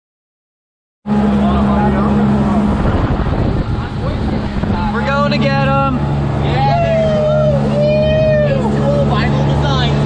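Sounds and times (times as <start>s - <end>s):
motorboat engine hum: 1.0s - 10.0s
rush of wind and water: 1.1s - 10.0s
wind on microphone: 1.9s - 10.0s.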